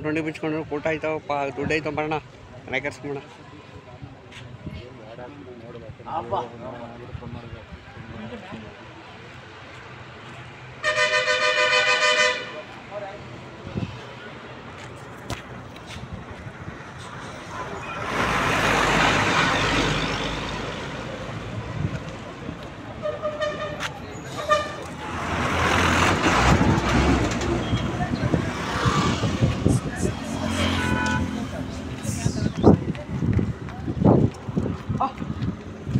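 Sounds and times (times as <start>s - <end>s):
low road traffic noise: 0.0s - 35.9s
two-tone vehicle horn honk: 10.8s - 12.6s, 30.6s - 31.4s
hooves on asphalt: 14.6s - 17.2s, 21.7s - 25.0s, 30.9s - 35.9s
vehicle passing: 17.2s - 22.6s, 24.7s - 35.5s.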